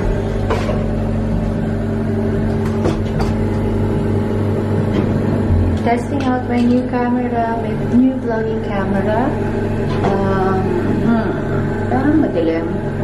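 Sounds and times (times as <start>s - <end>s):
steady electrical hum: 0.0s - 13.0s.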